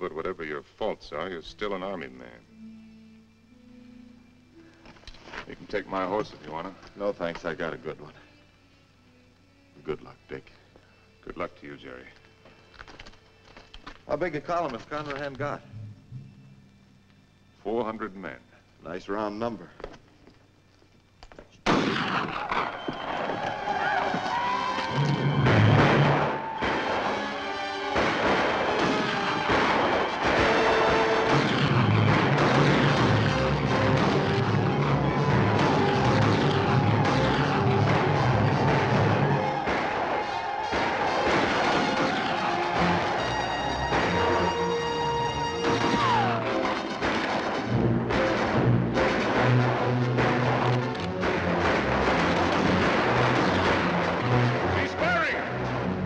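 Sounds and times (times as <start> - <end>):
orchestral film music: 0.1 - 18.0, 23.5 - 56.0
gunshots: 21.6 - 23.4, 24.9 - 56.0
warriors shouting: 22.4 - 46.7.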